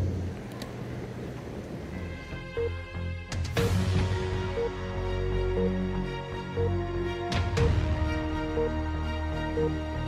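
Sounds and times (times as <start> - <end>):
road traffic: 0.0 - 10.0
faint clicks: 0.3 - 0.9.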